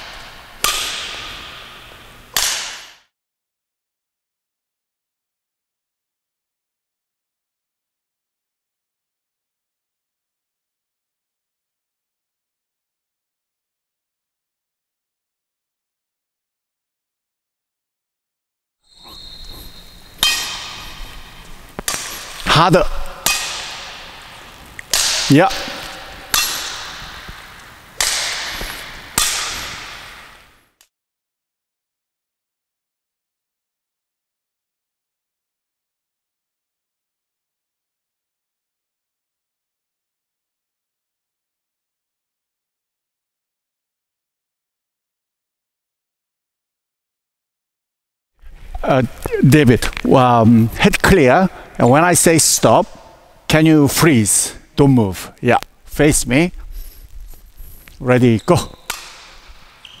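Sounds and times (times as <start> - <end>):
badminton racket striking shuttlecock: 0.0 - 3.0, 19.0 - 30.5, 58.7 - 60.0.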